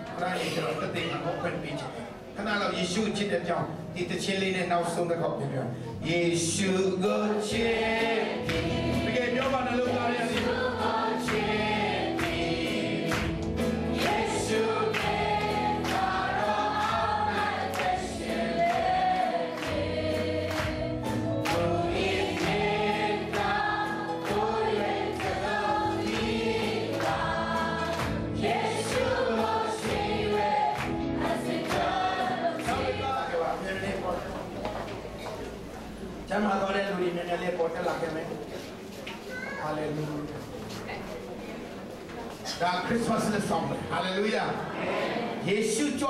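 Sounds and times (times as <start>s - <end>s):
gospel worship song: 0.0s - 38.8s, 42.3s - 46.0s.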